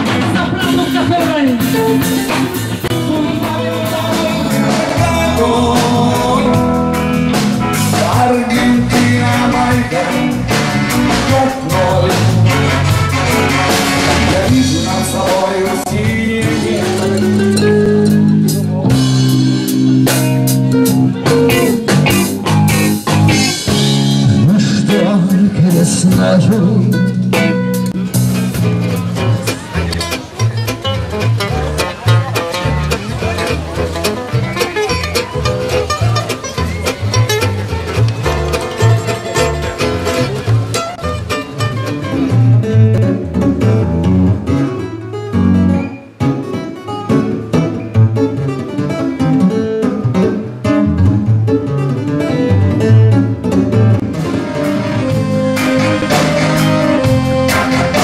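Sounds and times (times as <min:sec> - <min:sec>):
acoustic guitars playing swing: 0:00.0 - 0:58.0
live band music: 0:00.0 - 0:58.0
plucked double bass: 0:00.0 - 0:58.0.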